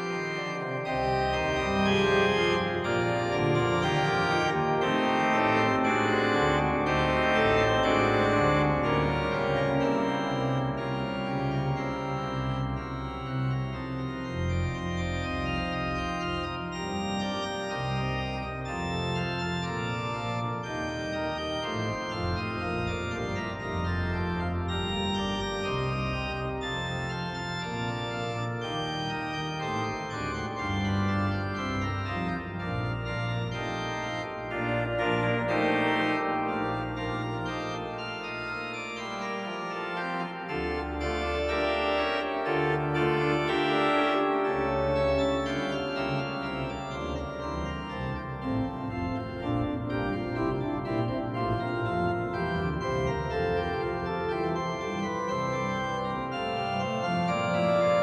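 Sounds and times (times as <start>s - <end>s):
deep organ pedal notes: 0.0s - 58.0s
organ playing held chords: 0.0s - 58.0s.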